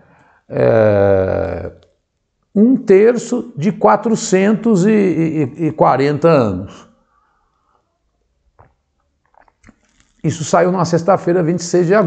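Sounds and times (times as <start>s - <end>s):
man swallowing drink: 9.3s - 9.9s.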